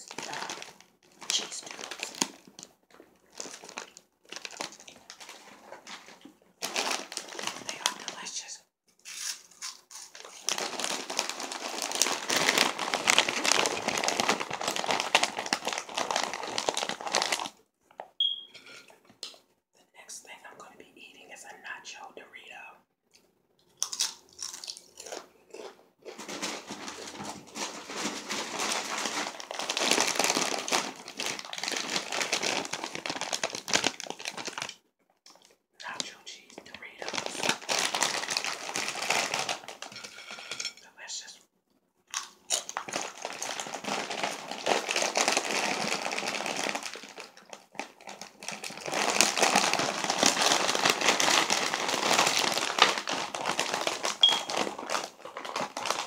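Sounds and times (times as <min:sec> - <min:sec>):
plastic snack bag crackling: 0:00.0 - 0:08.4, 0:09.1 - 0:17.6, 0:23.8 - 0:41.0, 0:42.1 - 0:56.0.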